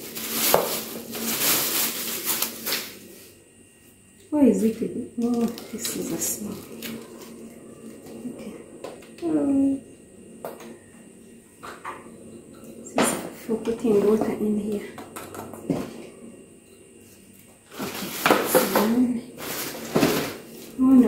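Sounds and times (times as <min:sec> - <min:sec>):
plastic packaging crinkling: 0:00.0 - 0:03.1.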